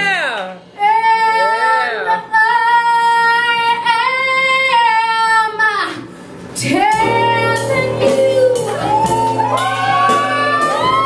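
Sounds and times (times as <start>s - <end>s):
woman singing into microphone: 0.8s - 11.0s.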